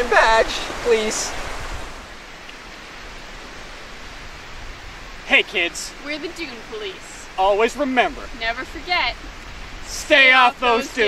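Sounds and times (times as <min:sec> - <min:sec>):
surf rushing: 0:00.0 - 0:11.0
wind: 0:00.0 - 0:11.0.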